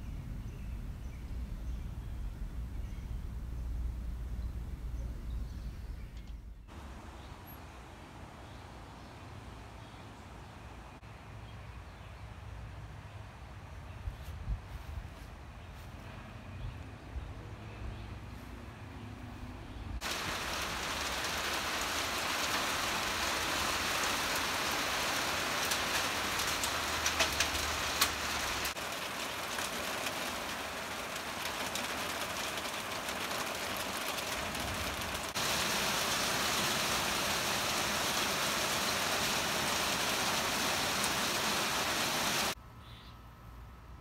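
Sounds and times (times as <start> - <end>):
heavy rain pouring off a roof: 20.0 - 42.6.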